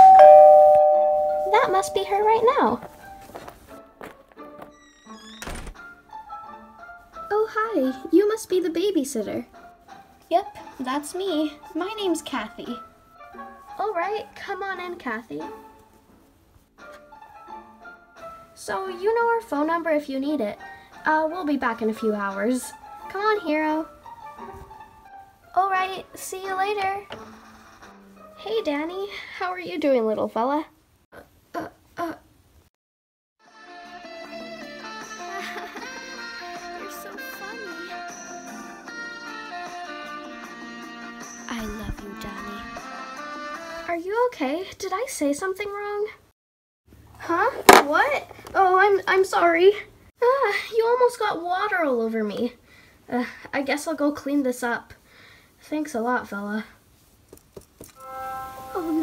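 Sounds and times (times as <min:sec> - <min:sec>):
soft background music: 0:00.0 - 0:04.8, 0:05.8 - 0:29.8, 0:33.5 - 0:44.0, 0:57.9 - 0:59.0.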